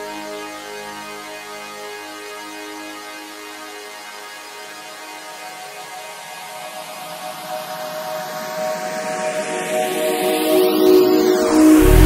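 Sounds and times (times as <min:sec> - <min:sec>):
held synth pad tones: 0:10.2 - 0:12.0
hissing noise sweep: 0:11.6 - 0:12.0.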